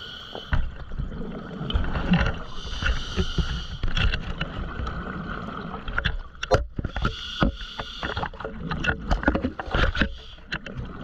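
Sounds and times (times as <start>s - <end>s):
scuba regulator breathing hiss: 2.5s - 3.8s, 7.0s - 8.2s.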